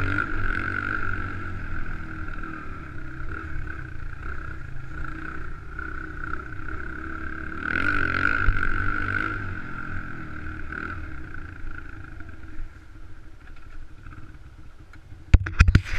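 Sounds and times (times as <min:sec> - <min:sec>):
dirt bike engine revving: 0:00.0 - 0:12.8.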